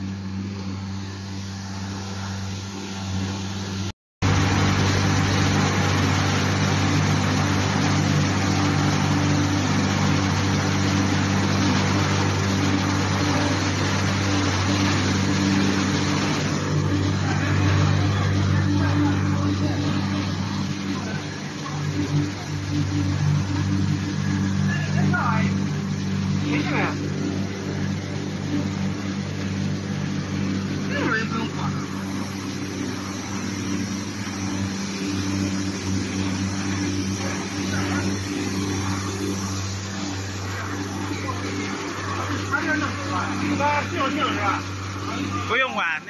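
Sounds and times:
low machine hum: 0.0 - 46.0.

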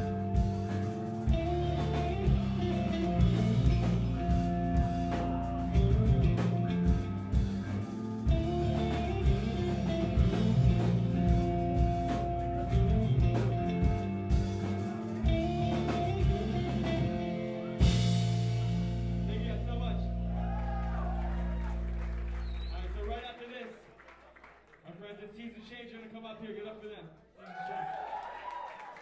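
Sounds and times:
pop-punk band playing: 0.0 - 21.9.

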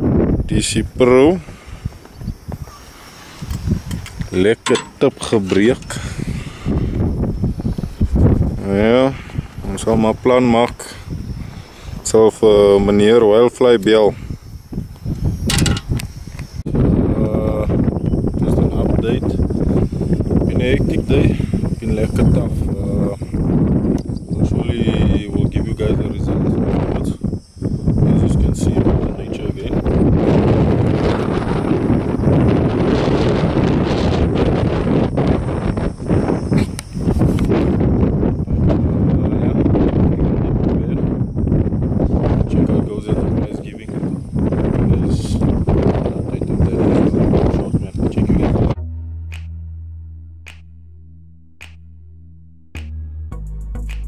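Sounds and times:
wind on microphone: 0.0 - 48.8.

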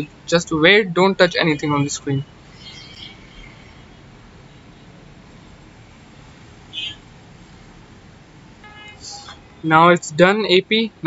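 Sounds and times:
low steady background noise: 0.0 - 11.0
high-pitched chirp: 2.5 - 4.9, 6.7 - 7.0.

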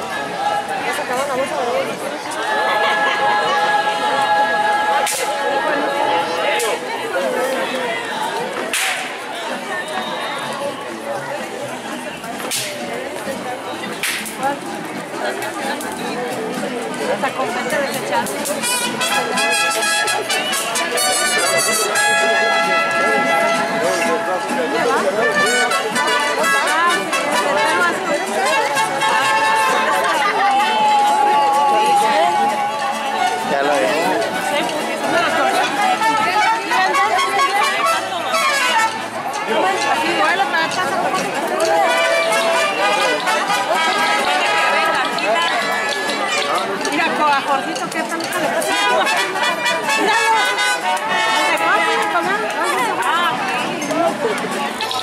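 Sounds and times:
crowd chatter: 0.0 - 55.0
brass band music: 18.4 - 30.8, 31.4 - 46.8, 48.5 - 53.3.

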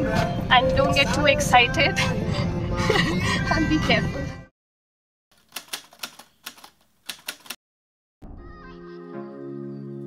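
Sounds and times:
typewriter key clicks: 5.4 - 7.6.

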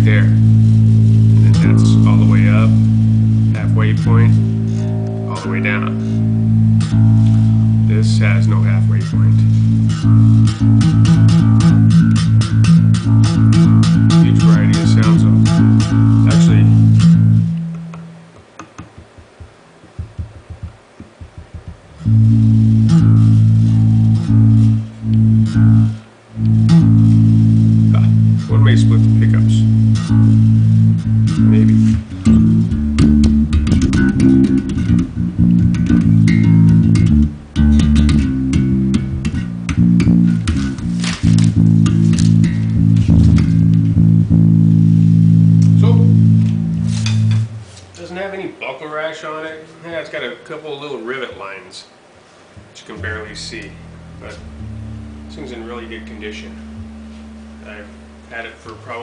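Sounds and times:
electric bass notes: 0.0 - 48.4, 52.6 - 59.0
faint bass string clicks: 1.4 - 48.0, 52.6 - 58.9.

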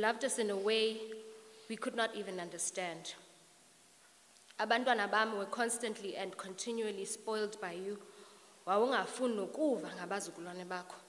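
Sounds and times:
woman speaking into a microphone: 0.0 - 1.1, 1.7 - 3.2, 4.6 - 8.0, 8.6 - 11.0.

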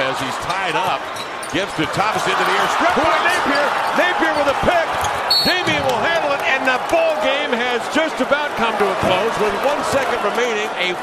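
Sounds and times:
arena crowd noise: 0.0 - 11.0
sneakers squeaking on court: 0.8 - 1.8, 3.4 - 6.0.

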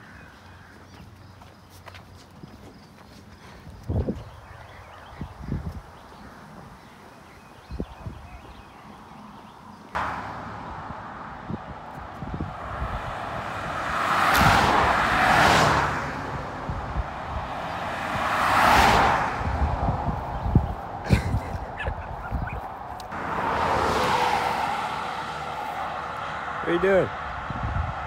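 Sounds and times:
cars driving past: 8.9 - 28.0.

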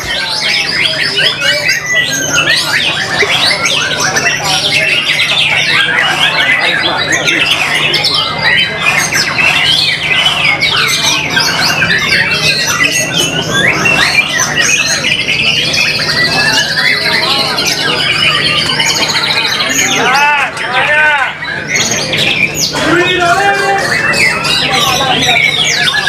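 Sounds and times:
songbird whistling and chattering: 0.0 - 26.0.

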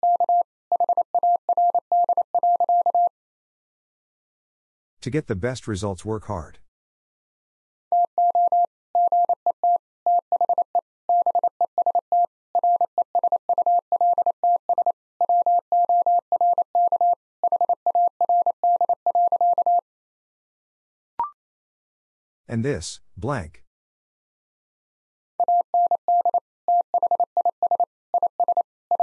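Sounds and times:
morse code beeps: 0.0 - 3.1, 8.0 - 19.8, 25.4 - 29.0.

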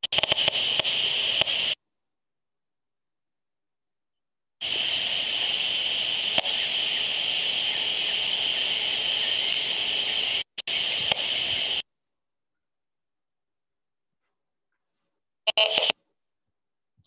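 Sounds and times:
steady radio hiss: 0.0 - 1.8, 4.6 - 11.9, 15.5 - 16.0.

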